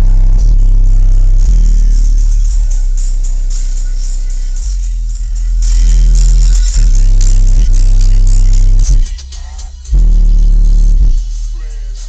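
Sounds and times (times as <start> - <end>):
bass-heavy music through subwoofers: 0.0 - 12.0.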